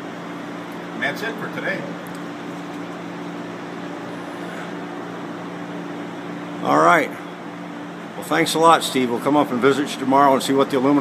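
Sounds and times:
mechanical hum with low drone: 0.0 - 11.0.

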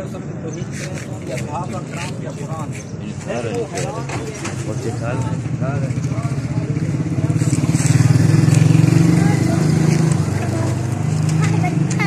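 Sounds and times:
motorcycle engine running: 5.1 - 12.0.

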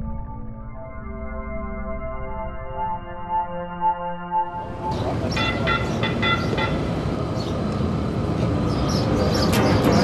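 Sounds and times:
train rumble and rail noise: 4.5 - 10.0.

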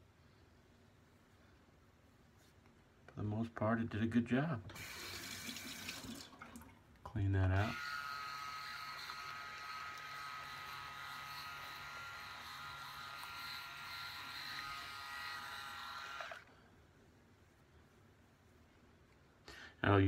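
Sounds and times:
electric razor humming: 7.6 - 16.5.

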